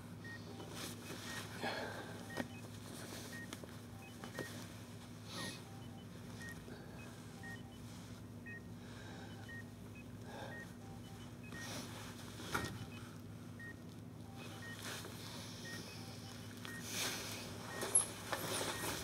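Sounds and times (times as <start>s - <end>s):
low steady hum: 0.0s - 19.0s
patient monitor beeping: 0.2s - 4.7s, 5.3s - 19.0s.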